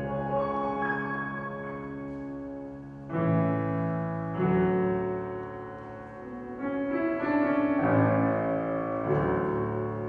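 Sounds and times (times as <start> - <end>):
grand piano playing: 0.0 - 10.0.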